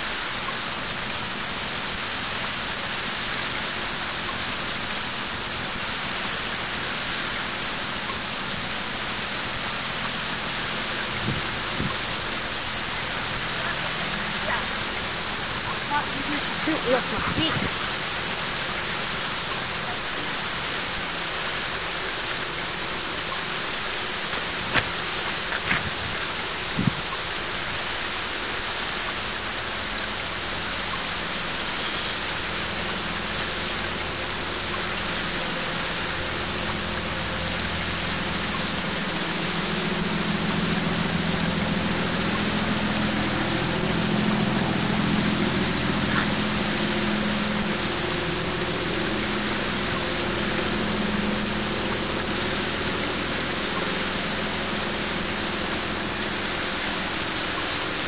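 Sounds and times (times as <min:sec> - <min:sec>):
heavy rain falling: 0:00.0 - 0:58.0.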